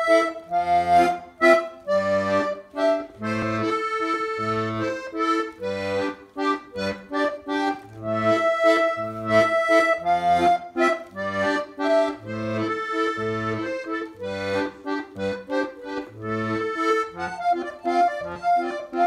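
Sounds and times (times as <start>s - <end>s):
button accordion waltz: 0.0s - 19.0s.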